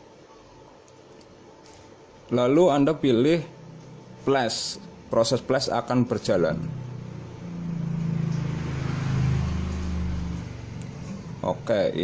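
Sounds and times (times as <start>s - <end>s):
low motor hum: 2.9s - 12.0s.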